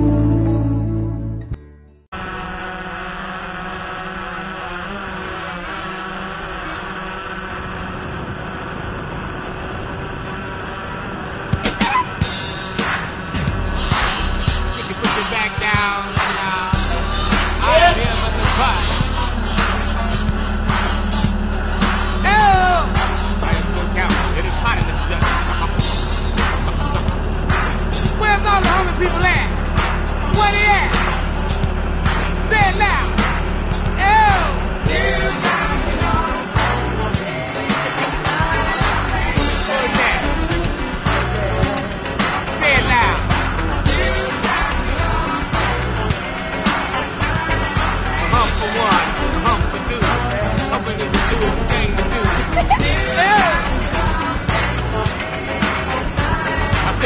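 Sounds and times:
gliding pitched notes: 0.0s - 1.6s, 16.7s - 56.9s
drone propellers humming: 2.1s - 57.0s
background music with steady beat: 11.6s - 57.0s.

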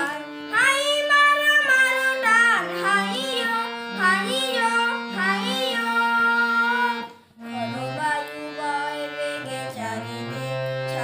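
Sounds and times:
person singing: 0.0s - 11.0s
sustained instrumental accompaniment: 0.0s - 11.0s.

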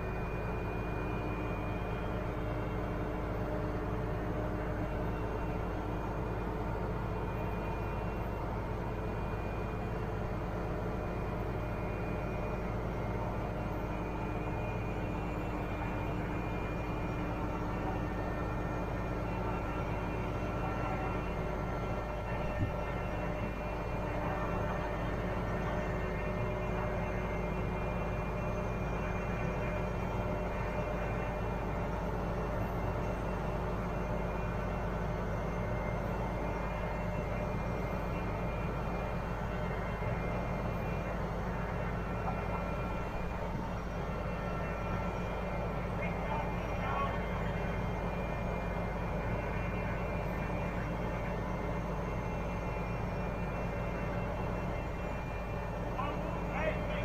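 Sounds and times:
crane diesel engine running: 0.0s - 57.0s.

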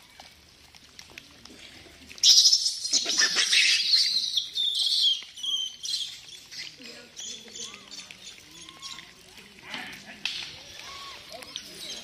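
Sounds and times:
monkeys screaming: 2.2s - 9.2s.

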